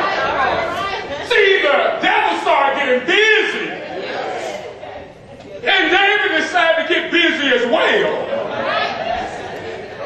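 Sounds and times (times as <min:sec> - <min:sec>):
voices chattering: 0:00.0 - 0:10.0
man preaching into microphone: 0:01.2 - 0:03.8, 0:05.6 - 0:08.3.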